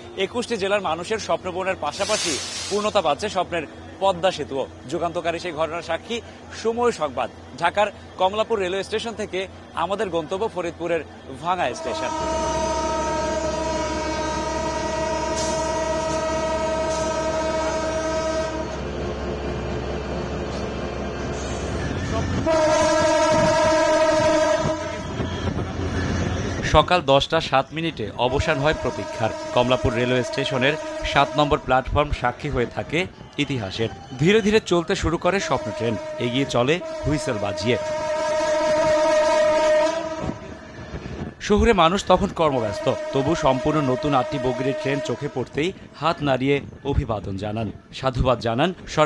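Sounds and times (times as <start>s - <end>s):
locomotive horn blast: 11.7s - 18.9s, 21.5s - 26.6s, 28.2s - 32.8s, 35.4s - 40.6s, 42.6s - 45.6s.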